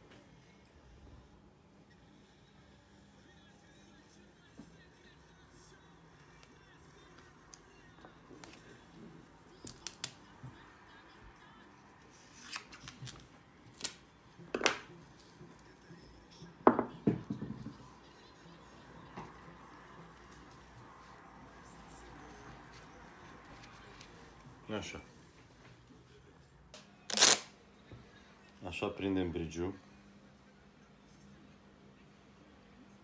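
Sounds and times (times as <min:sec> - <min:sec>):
adhesive tape crackling snaps: 0:09.6 - 0:10.2, 0:13.8 - 0:14.0, 0:26.8 - 0:27.5.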